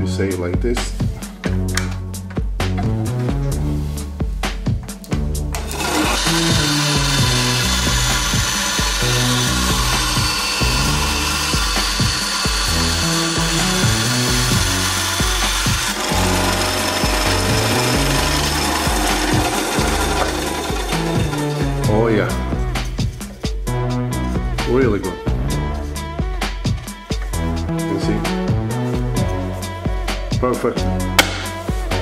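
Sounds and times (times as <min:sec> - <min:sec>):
background music: 0:00.0 - 0:32.0
band saw cutting wood: 0:05.5 - 0:22.5.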